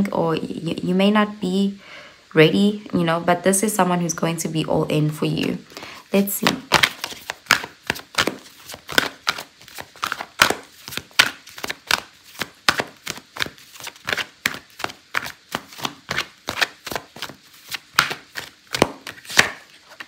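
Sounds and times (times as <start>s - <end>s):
cards being shuffled: 6.4s - 20.0s.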